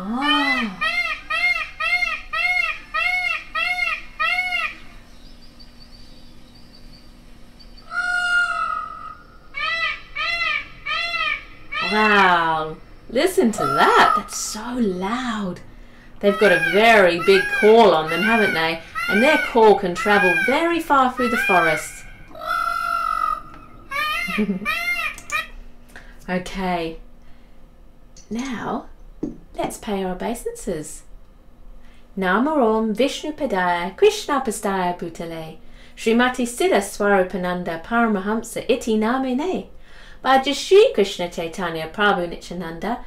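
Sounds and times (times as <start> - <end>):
peacock calling: 0.0 - 14.4, 16.2 - 25.6.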